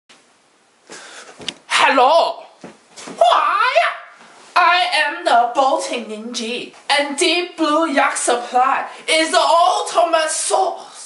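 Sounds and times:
man calling out: 1.7 - 2.6, 3.2 - 11.0.

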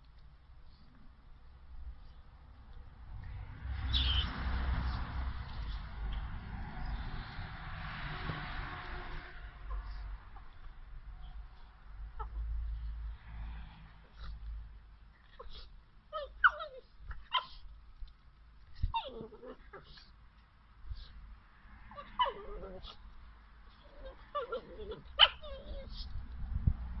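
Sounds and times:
small dog growling: 18.9 - 20.1, 21.9 - 23.1, 23.7 - 26.1.

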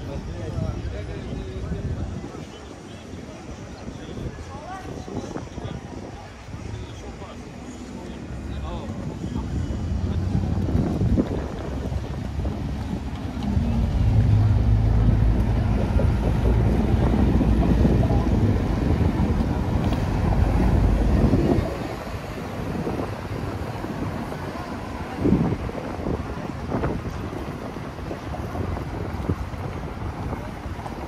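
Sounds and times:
bus engine drone passing: 8.3 - 31.0.

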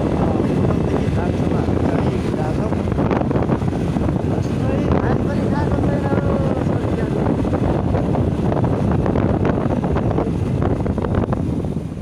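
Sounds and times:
vehicle moving: 0.0 - 12.0
wind buffeting microphone: 0.0 - 12.0.

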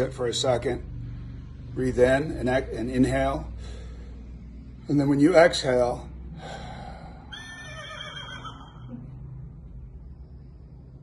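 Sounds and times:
man imitating horse whinny: 7.3 - 9.0.

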